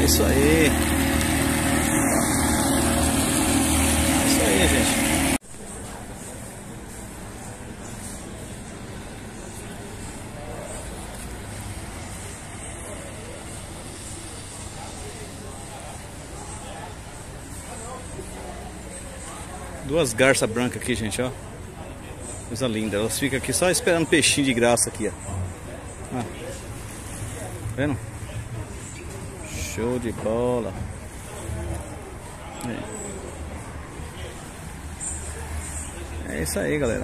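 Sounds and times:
faint distant voices: 0:00.0 - 0:37.0.

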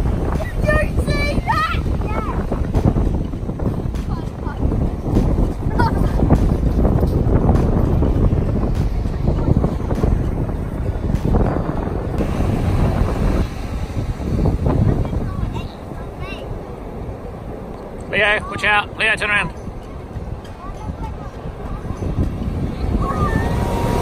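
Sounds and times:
ocean surf breaking: 0:00.0 - 0:24.0
wind buffeting microphone: 0:00.0 - 0:24.0.

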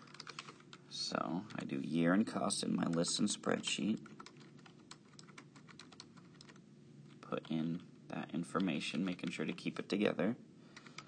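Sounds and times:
keyboard keys clicking: 0:00.1 - 0:00.5, 0:04.0 - 0:06.6.

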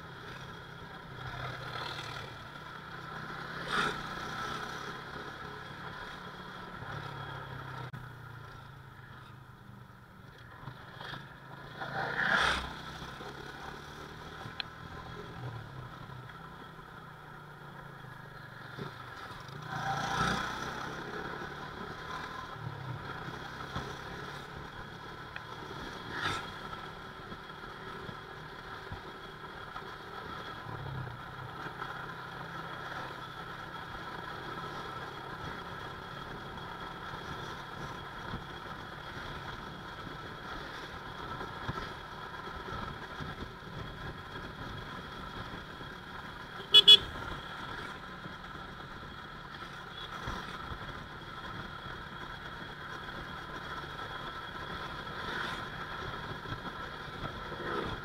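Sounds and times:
road noise: 0:00.0 - 0:58.0
motorcycle engine hum: 0:20.6 - 0:58.0
horn toots: 0:46.6 - 0:47.4.

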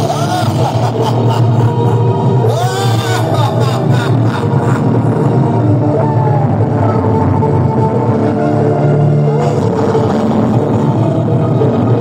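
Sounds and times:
loud electronic music: 0:00.0 - 0:12.0.

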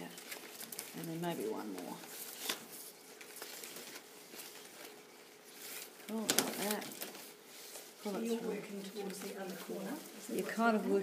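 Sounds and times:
flax strips rustling and scraping: 0:00.0 - 0:11.0.

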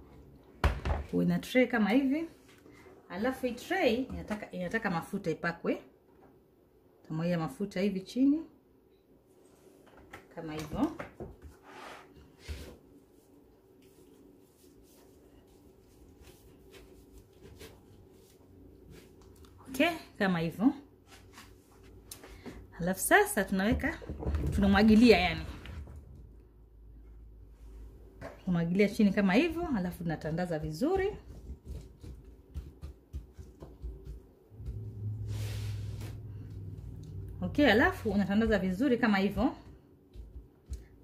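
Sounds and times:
low steady hum: 0:12.2 - 0:41.0.

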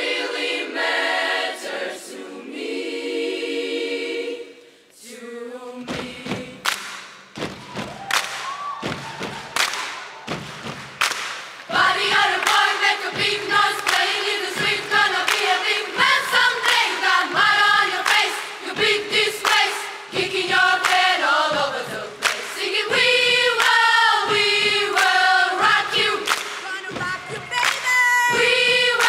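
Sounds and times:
girls' choir singing in harmony: 0:00.0 - 0:07.0, 0:11.7 - 0:29.0
sharp percussive hits: 0:05.9 - 0:17.0.

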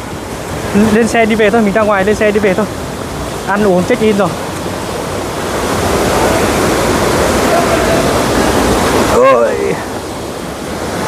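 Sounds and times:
river rapids rushing over rocks: 0:00.0 - 0:11.0.

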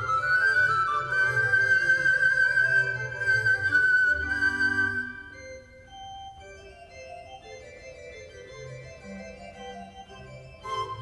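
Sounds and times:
pan flute: 0:00.0 - 0:06.1, 0:10.6 - 0:11.0
organ chords: 0:00.0 - 0:11.0.

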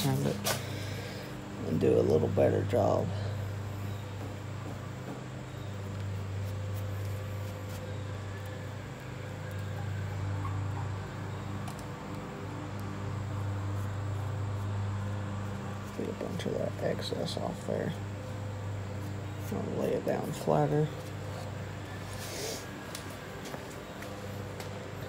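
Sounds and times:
low mechanical hum: 0:00.0 - 0:25.0.

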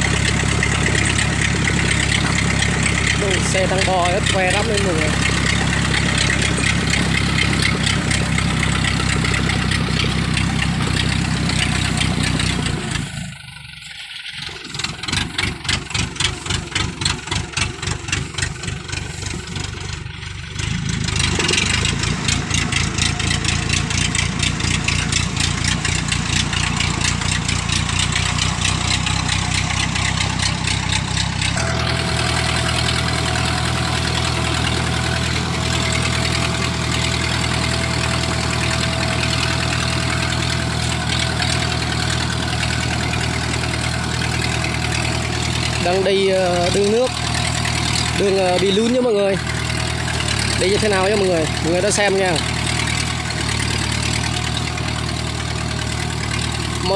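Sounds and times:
diesel engine chugging: 0:00.0 - 0:56.9.

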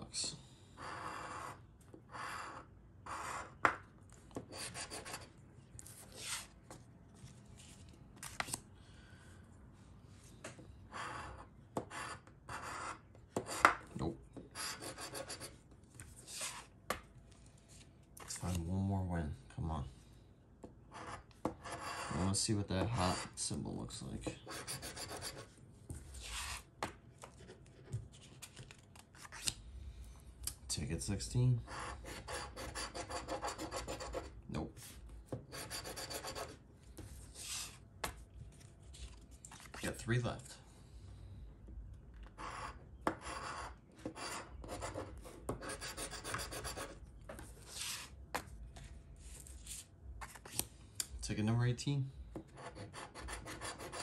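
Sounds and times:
coin scratching lottery ticket: 0:14.6 - 0:15.5, 0:24.5 - 0:25.5, 0:31.7 - 0:34.3, 0:35.5 - 0:36.6, 0:42.4 - 0:47.0, 0:52.6 - 0:54.0.

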